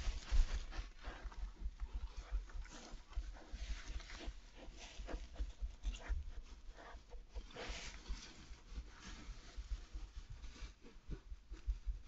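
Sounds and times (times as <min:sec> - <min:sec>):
badger cub snuffling in straw: 0:00.0 - 0:12.0.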